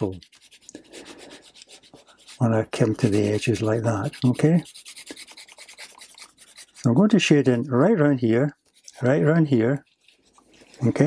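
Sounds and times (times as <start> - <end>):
pencil scratching on paper: 0.0 - 7.6, 8.6 - 11.0.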